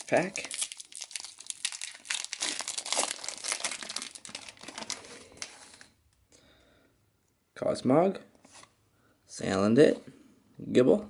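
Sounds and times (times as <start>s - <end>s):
foil wrapper crinkling and tearing: 0.0s - 5.9s.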